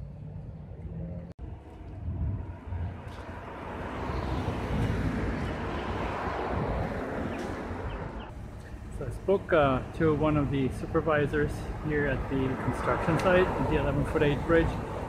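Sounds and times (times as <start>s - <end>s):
low hum: 0.0s - 5.5s
motor vehicle passing: 0.0s - 9.0s.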